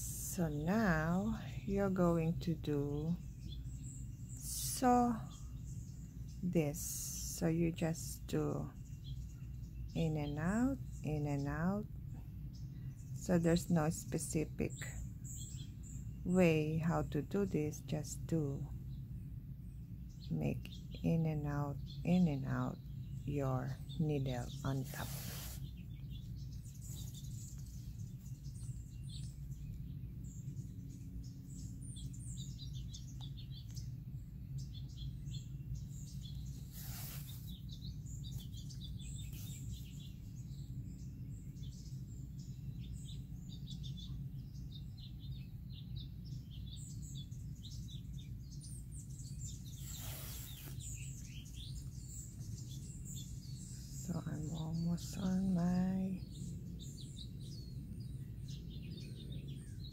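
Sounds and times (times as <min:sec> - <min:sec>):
low steady hum: 0:00.0 - 0:59.9
small birds chirping: 0:00.0 - 0:59.9.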